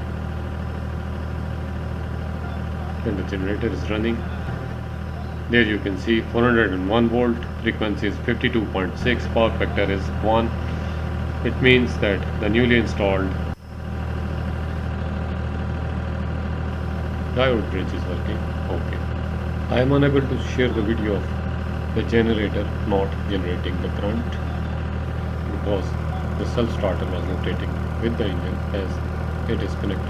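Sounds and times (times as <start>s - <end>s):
generator engine droning: 0.0s - 30.0s.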